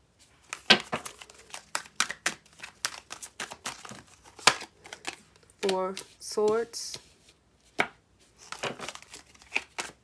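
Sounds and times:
cards being shuffled: 0.3s - 10.0s.

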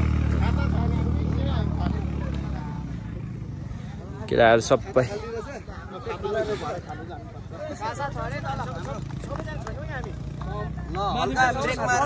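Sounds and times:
faint voices: 0.0s - 12.0s
vehicle engine humming: 0.0s - 12.0s.

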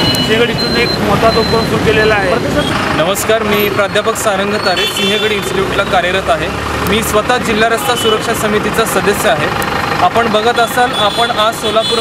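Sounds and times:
street traffic: 0.0s - 12.0s
man speaking: 0.2s - 12.0s.

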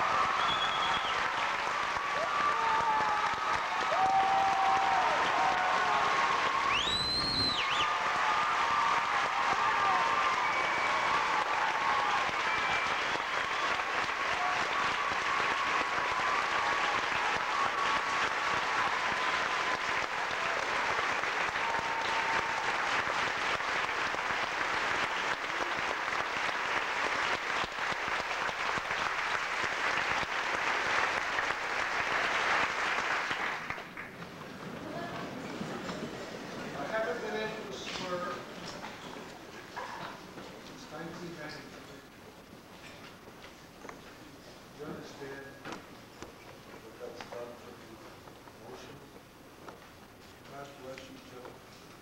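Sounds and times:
audience applauding: 0.0s - 41.8s
brief whistles: 0.4s - 1.2s, 6.7s - 7.9s, 12.5s - 13.8s.

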